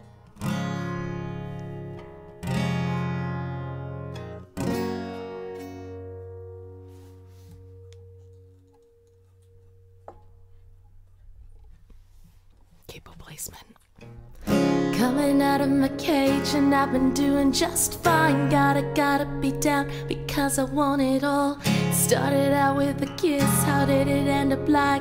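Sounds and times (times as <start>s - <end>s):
acoustic guitar chords strummed: 0.0s - 10.9s, 14.0s - 25.0s.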